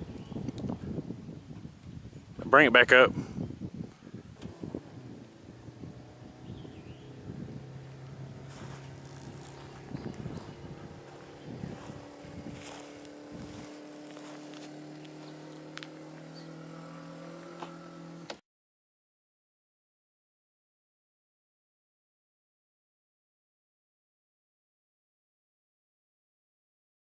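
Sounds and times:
hydraulic pump motor humming: 0:03.8 - 0:18.4.

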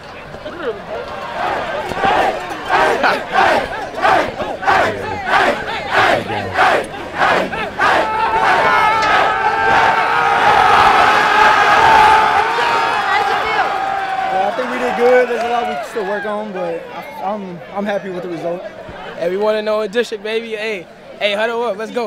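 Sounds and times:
players shouting group chant: 0:01.2 - 0:14.0.

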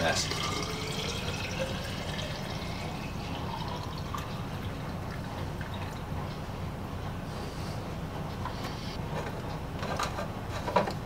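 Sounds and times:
steady low hum: 0:00.0 - 0:10.6.

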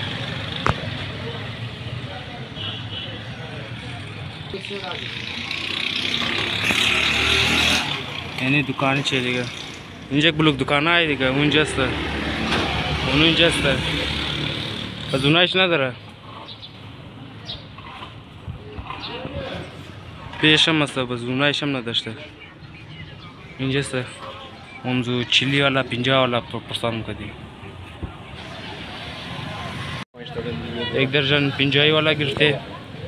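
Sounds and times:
traffic rumble and hiss: 0:00.0 - 0:33.0
motorcycle engines running: 0:03.4 - 0:15.4.

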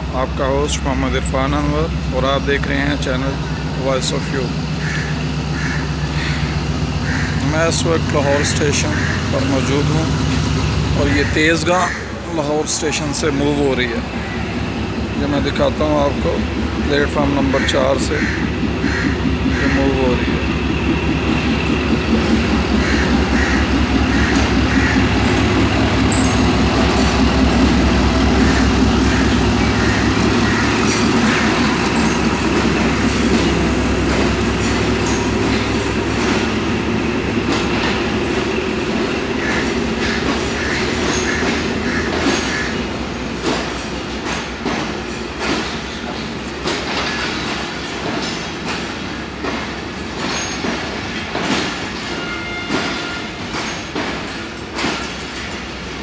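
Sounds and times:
diesel locomotive engine humming: 0:00.0 - 0:56.0
train wheels clicking over rail joints: 0:00.2 - 0:56.0.

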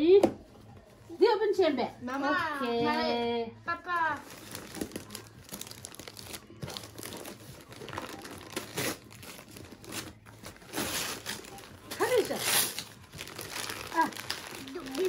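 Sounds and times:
wrapping paper crinkling and tearing: 0:04.2 - 0:15.0.

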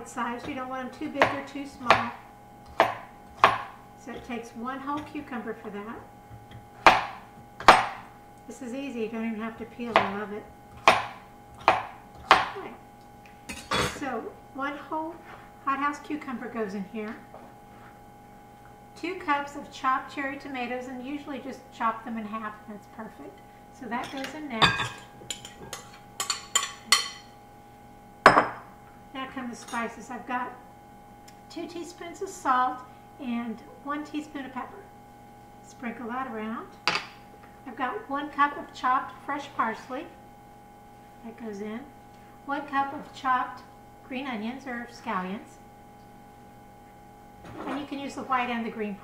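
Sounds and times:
knife chopping on cutting board: 0:01.2 - 0:04.3, 0:06.8 - 0:08.0, 0:10.8 - 0:12.6
glass clinking against glass: 0:24.0 - 0:27.2.

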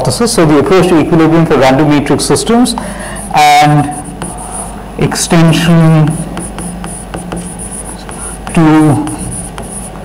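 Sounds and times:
low room hum: 0:00.0 - 0:10.0
chalk tapping on blackboard: 0:02.6 - 0:10.0.

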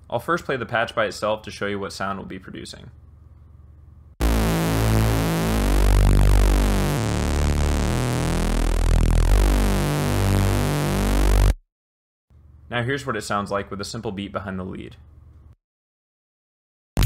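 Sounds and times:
gritty low synth bass: 0:04.2 - 0:11.6.

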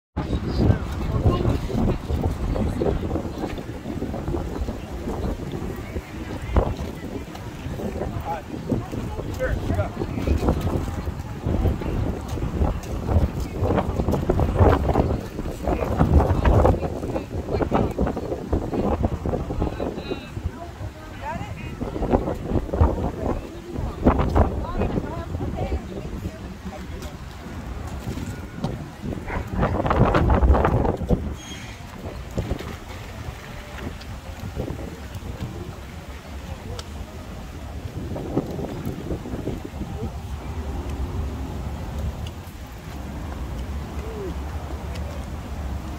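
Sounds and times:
faint background voices: 0:00.2 - 0:45.9
wind buffeting microphone: 0:00.2 - 0:45.9.

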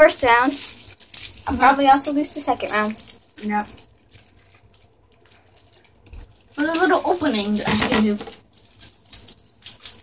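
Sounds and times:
child speaking: 0:00.0 - 0:00.6, 0:01.4 - 0:03.8, 0:06.6 - 0:08.4.

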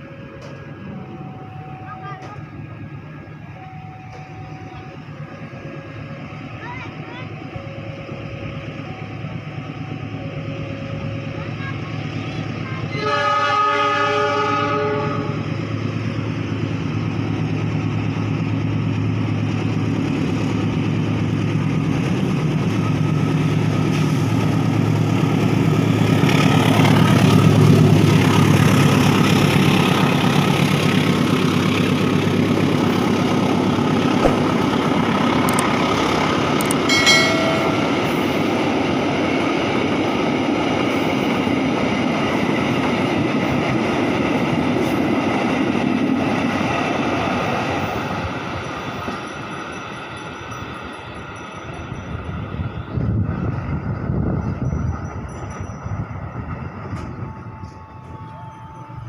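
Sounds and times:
train rumbling past: 0:00.0 - 0:59.0
locomotive horn: 0:12.8 - 0:15.4, 0:57.2 - 0:59.0.

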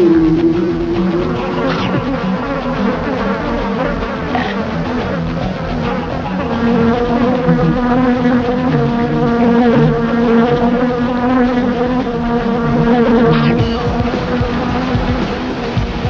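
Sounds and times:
fly buzzing: 0:00.0 - 0:15.8.

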